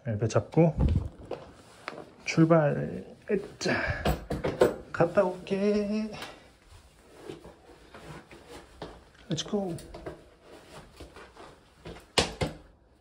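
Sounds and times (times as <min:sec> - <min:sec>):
man speaking: 0:02.2 - 0:04.0, 0:09.3 - 0:09.9
quiet rustling: 0:04.8 - 0:12.1.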